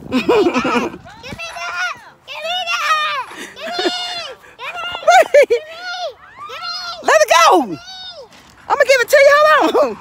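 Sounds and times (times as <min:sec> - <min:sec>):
children shouting: 0:00.2 - 0:08.4.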